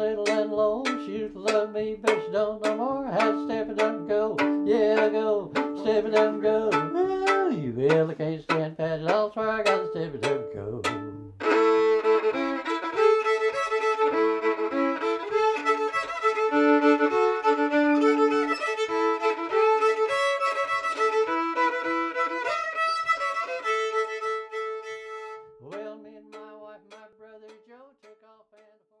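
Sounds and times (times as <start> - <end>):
fiddle-led instrumental music: 0.0 - 28.4.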